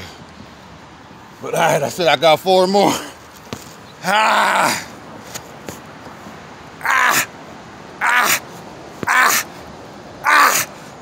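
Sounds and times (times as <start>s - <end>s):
man grunting with exertion: 4.0s - 4.9s, 6.8s - 7.3s, 8.0s - 8.4s, 9.0s - 9.5s, 10.2s - 10.8s.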